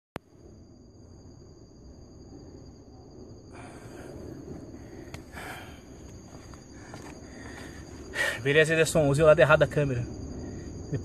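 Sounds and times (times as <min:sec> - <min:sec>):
person breathing: 0:03.5 - 0:06.1, 0:06.7 - 0:08.4
faint footsteps: 0:06.0 - 0:08.1.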